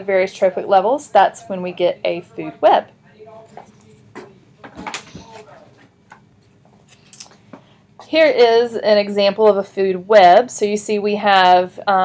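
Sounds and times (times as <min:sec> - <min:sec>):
whiteboard being handled: 0:03.5 - 0:06.8.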